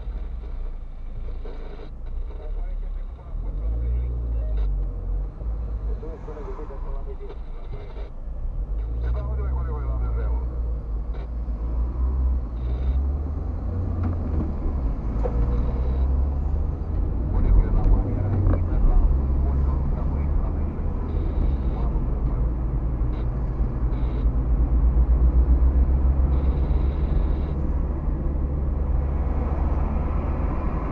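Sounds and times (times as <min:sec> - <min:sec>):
car engine and tyre rumble: 0:00.0 - 0:30.9.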